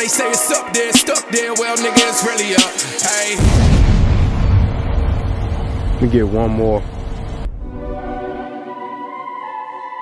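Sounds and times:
low steady rumble: 3.4s - 7.8s.

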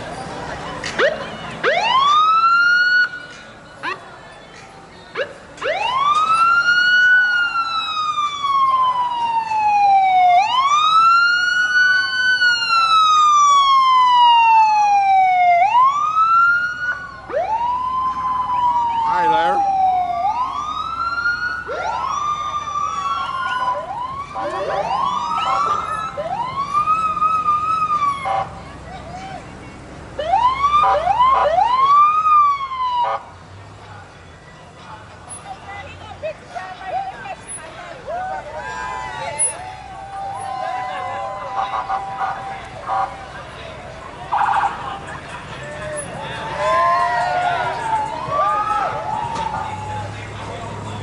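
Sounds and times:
emergency vehicle siren: 0.9s - 4.0s, 5.1s - 28.7s, 30.2s - 33.4s, 36.9s - 51.0s.

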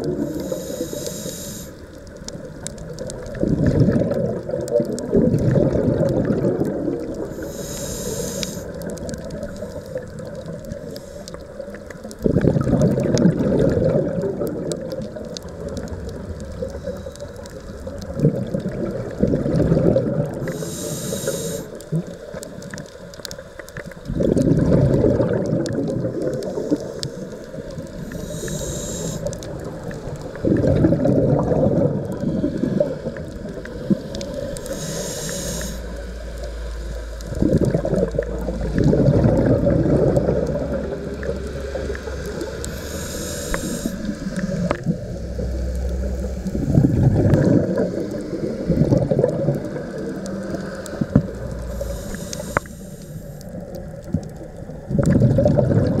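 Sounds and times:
regulator inhalation hiss: 0.1s - 2.0s, 7.3s - 8.9s, 10.7s - 11.6s, 20.4s - 22.4s, 26.4s - 30.4s, 33.8s - 37.2s, 42.1s - 46.8s, 51.6s - 53.6s
gurgling exhaust bubbles: 2.3s - 7.4s, 11.6s - 20.6s, 24.0s - 27.0s, 29.4s - 34.7s, 35.9s - 52.2s, 53.5s - 56.0s.

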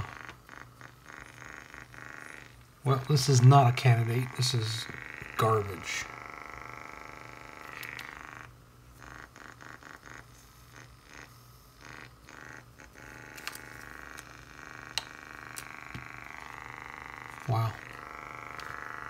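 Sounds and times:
air pump buzzing: 0.0s - 19.0s.

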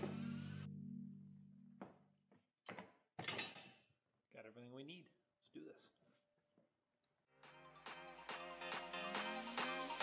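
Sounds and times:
background music: 0.0s - 2.0s, 7.3s - 10.0s.

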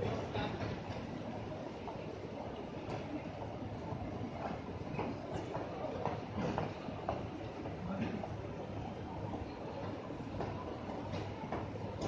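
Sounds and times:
crowd footsteps clicking: 0.0s - 12.0s
rumble of traffic and trains: 0.0s - 12.0s.

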